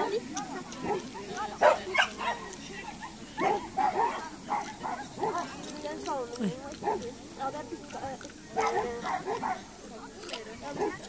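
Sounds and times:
dog barking: 1.6s - 5.5s, 8.6s - 9.7s.

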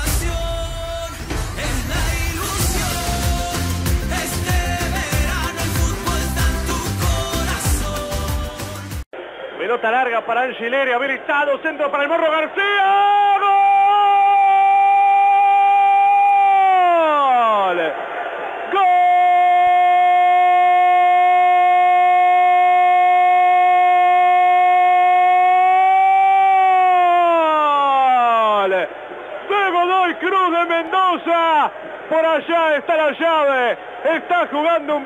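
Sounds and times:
excited shouts: 12.0s - 35.0s.

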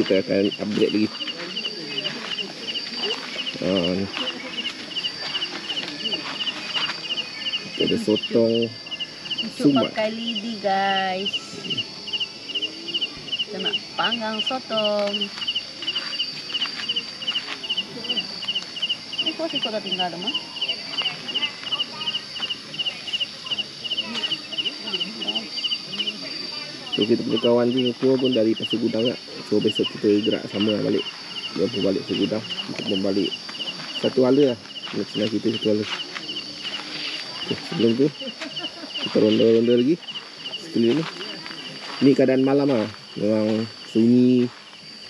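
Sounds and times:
crickets chirping: 0.0s - 45.0s
faint voices: 0.0s - 45.0s
steady high-pitched hum: 0.0s - 45.0s.

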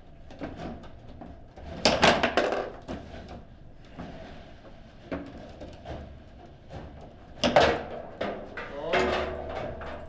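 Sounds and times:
foosball ball rattling: 1.7s - 3.0s
foosball table knock: 2.2s - 2.7s.

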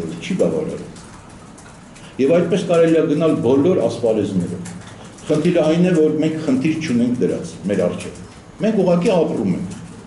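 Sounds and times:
man speaking into microphones: 0.0s - 1.0s, 2.0s - 9.9s.

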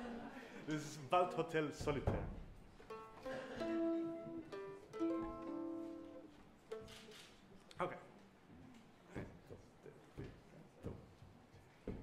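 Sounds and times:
mandolin: 2.7s - 7.4s
violin: 2.8s - 7.4s.

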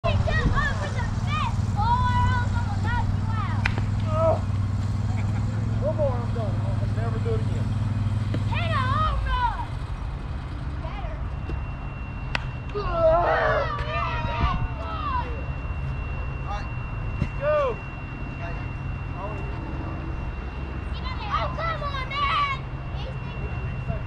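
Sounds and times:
steady low hum: 0.0s - 24.0s
voices calling out: 0.0s - 24.0s.

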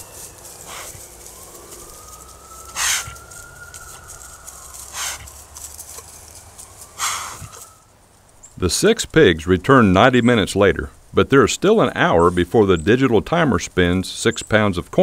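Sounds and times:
faint wail: 0.0s - 5.5s
hog alarm huffs: 0.0s - 7.9s.

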